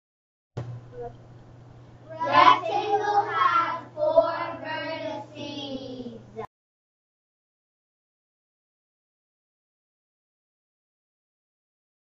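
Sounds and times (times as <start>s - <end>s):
child sing-song speech: 2.1s - 6.5s.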